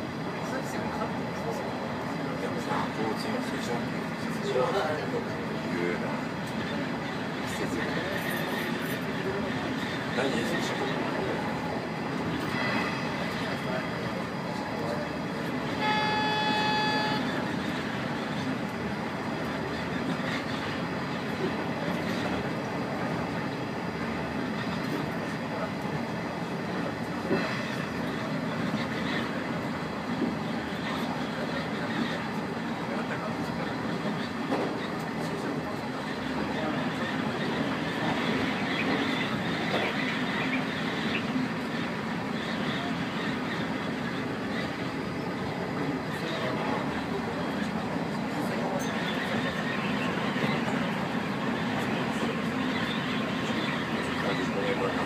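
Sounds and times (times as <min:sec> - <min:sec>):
train running on rails: 0:00.0 - 0:55.0
train horn toot: 0:15.7 - 0:17.5.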